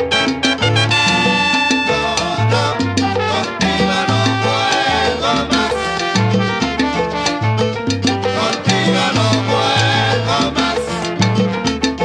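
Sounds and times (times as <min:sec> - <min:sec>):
instrumental salsa music: 0:00.0 - 0:12.0.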